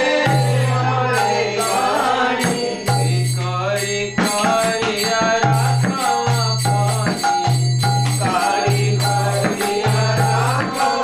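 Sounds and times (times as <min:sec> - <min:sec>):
man singing: 0:00.0 - 0:07.4, 0:08.2 - 0:11.0.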